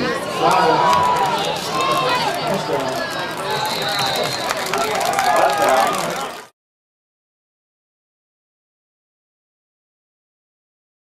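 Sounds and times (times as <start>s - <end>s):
excited voices shouting: 0.0s - 6.5s.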